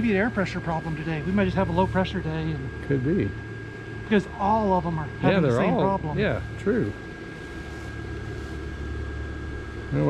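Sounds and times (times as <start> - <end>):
blower fan humming: 0.0 - 10.0
high-pitched whine: 0.0 - 10.0.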